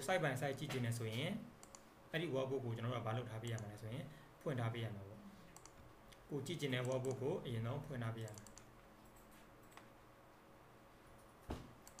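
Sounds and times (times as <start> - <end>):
person speaking: 0.0 - 8.7
computer mouse clicks: 1.6 - 1.9, 3.5 - 3.7, 5.5 - 6.2, 6.8 - 7.2, 8.2 - 9.9, 11.2 - 12.0.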